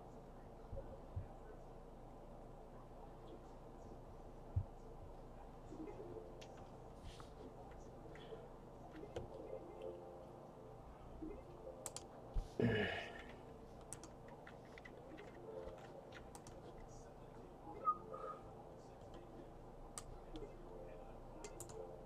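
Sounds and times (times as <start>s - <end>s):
computer keyboard and mouse clicks: 11.8s - 12.1s, 13.8s - 16.8s, 21.4s - 21.8s.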